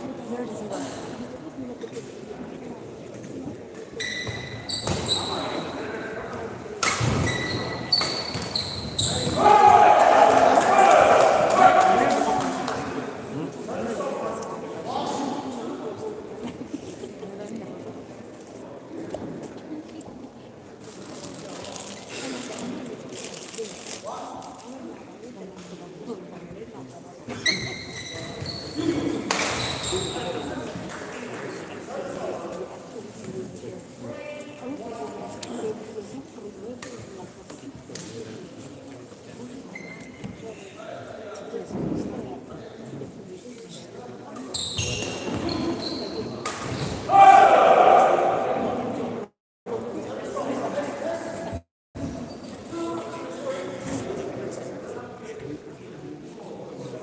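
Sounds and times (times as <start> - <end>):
voices echoing in hall: 0.0 - 57.0
shoes squeaking on court floor: 3.8 - 6.1, 6.8 - 9.4, 27.3 - 30.8, 39.6 - 40.6, 44.3 - 47.1, 52.0 - 52.7
people shouting in hall: 9.1 - 12.4, 47.1 - 48.9.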